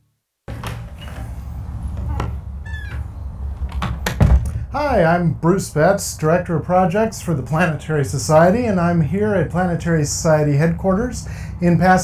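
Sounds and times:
low outdoor rumble: 0.5 - 12.0.

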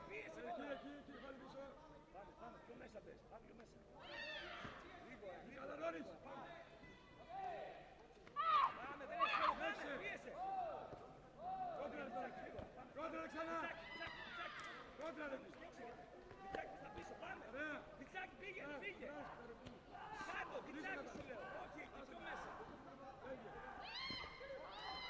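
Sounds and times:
people shouting calls: 13.2 - 15.0.

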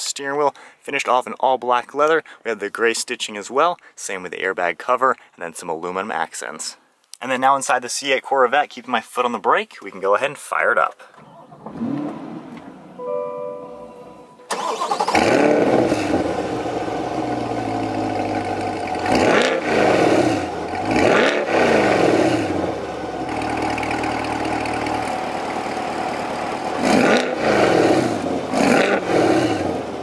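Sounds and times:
car engine starting and revving: 11.3 - 13.0, 14.5 - 30.0.

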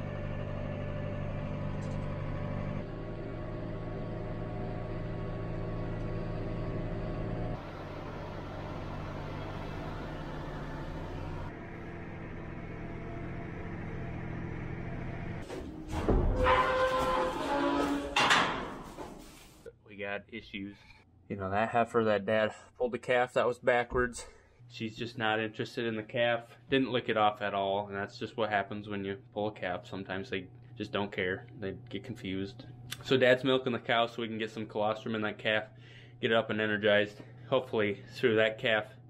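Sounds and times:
tractor engine drone from cab: 0.0 - 18.5.

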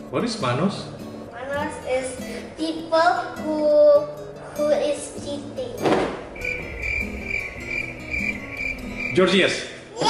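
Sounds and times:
soft background music: 0.0 - 10.0
cricket chirping: 6.4 - 9.3.

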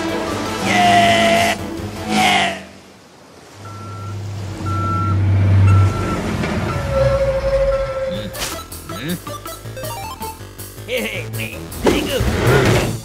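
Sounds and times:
diesel engine rumble: 3.4 - 9.3
truck reversing beeper: 3.6 - 10.2.

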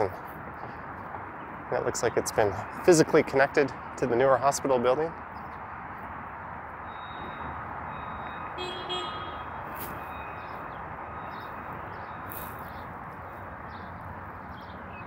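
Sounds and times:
distant traffic hum: 0.0 - 15.0
faint beep: 6.8 - 9.4, 10.0 - 12.3.

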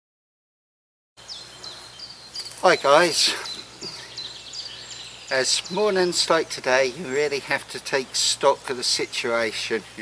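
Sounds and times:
woodland ambience: 1.2 - 10.0.

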